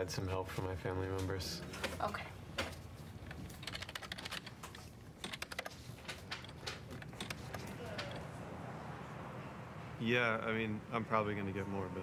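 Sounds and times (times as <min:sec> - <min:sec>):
computer keyboard typing: 0:03.3 - 0:08.3.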